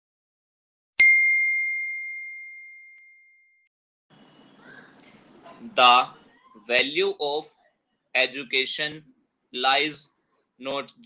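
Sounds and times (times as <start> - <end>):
notification bell ding: 1.0 - 3.6.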